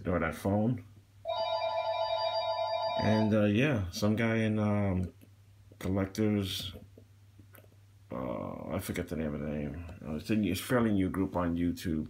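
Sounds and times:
phone ringing: 1.2s - 3.4s.

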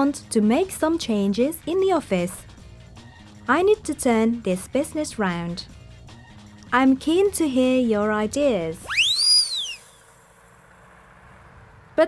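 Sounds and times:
whistle-like swoop: 8.8s - 10.2s.

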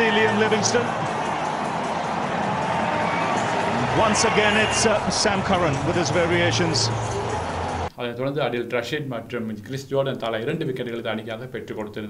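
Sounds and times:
stadium crowd roar: 0.0s - 7.9s.

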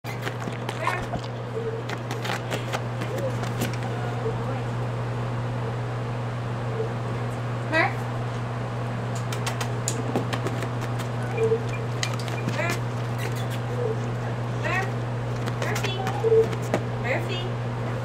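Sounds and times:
low equipment hum: 0.0s - 18.0s
dog sniffing: 0.1s - 3.8s, 10.5s - 14.1s
short high squeaks: 11.2s - 13.8s.

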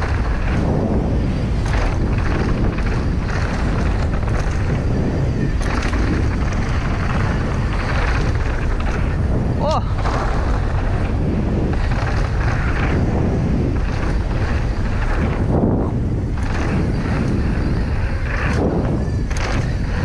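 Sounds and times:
mountain bike rumbling on gravel: 0.0s - 20.0s
wind buffeting microphone: 0.0s - 20.0s.

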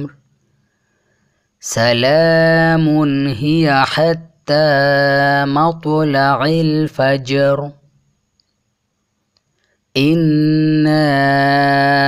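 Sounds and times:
chanted recitation: 0.0s - 0.3s, 1.6s - 8.0s, 9.9s - 12.0s
faint clicks: 8.3s - 8.6s, 9.3s - 9.8s.

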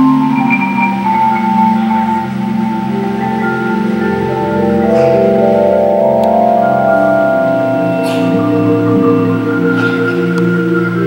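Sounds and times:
marimbas playing sustained chords: 0.0s - 11.0s.

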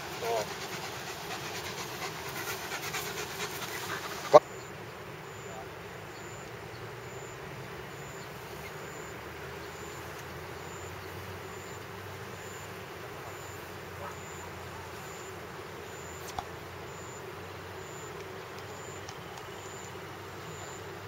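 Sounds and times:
distant road traffic hum: 0.0s - 21.0s.

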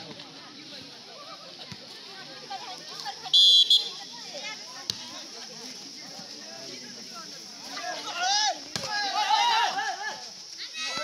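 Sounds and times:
spectators chattering: 0.0s - 11.0s
referee's whistle blast: 3.3s - 4.0s.

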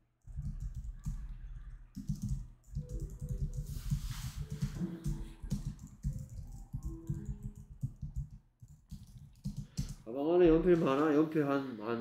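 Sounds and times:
computer keyboard typing: 0.2s - 10.0s.

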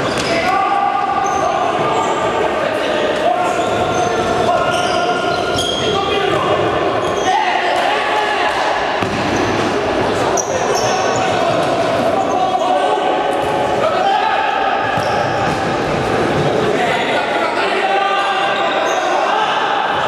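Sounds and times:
players shouting: 0.1s - 20.0s
short high squeaks: 3.9s - 6.0s.

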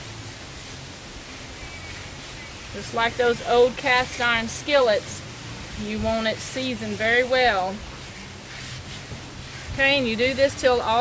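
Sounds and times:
steady even hiss: 0.0s - 11.0s.

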